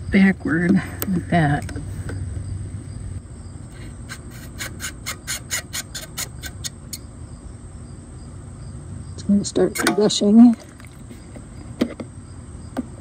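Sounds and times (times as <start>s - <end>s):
low steady rumble: 0.0s - 4.0s
insect chirping in short pulses: 1.8s - 13.0s.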